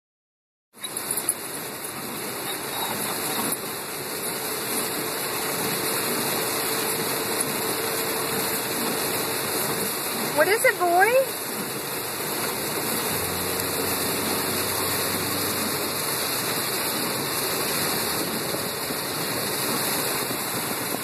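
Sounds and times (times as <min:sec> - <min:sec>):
heavy rain on a car roof: 0:00.7 - 0:21.0.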